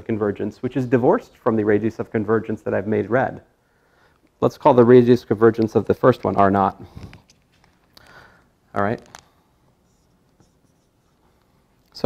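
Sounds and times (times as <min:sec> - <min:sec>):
marker squeaking on whiteboard: 0:09.8 - 0:11.2.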